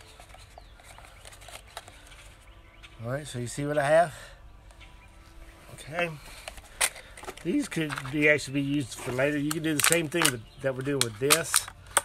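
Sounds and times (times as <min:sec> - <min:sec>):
plastic water bottles crinkling: 0:00.0 - 0:02.6, 0:05.8 - 0:12.0.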